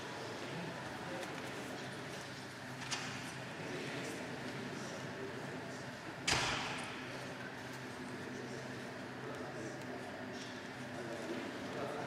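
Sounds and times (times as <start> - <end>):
voices murmuring in echoing hall: 0.0 - 12.0.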